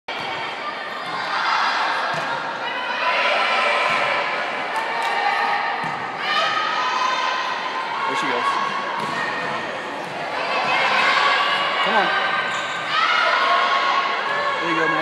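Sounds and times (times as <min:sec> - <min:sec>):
people calling and cheering: 0:00.1 - 0:15.0.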